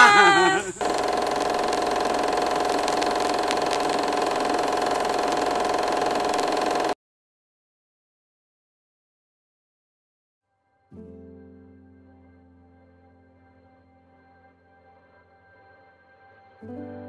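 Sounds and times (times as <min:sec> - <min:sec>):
crowd cheering and shouting: 0:00.0 - 0:00.8
steady engine-like hum: 0:00.8 - 0:06.9.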